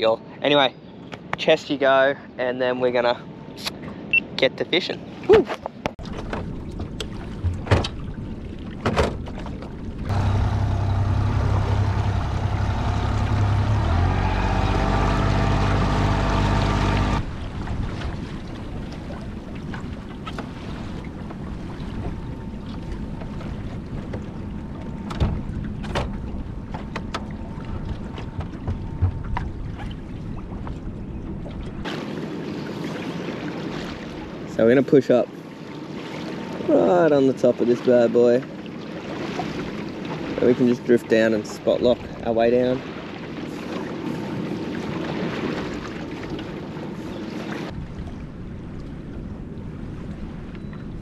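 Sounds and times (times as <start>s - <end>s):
water and wind around hull: 0.0s - 51.0s
outboard motor running: 10.0s - 17.9s, 42.8s - 47.8s.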